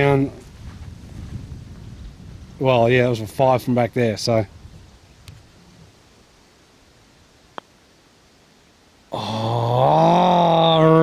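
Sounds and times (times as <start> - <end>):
man's drawn-out vocal ohhh: 9.1 - 11.0.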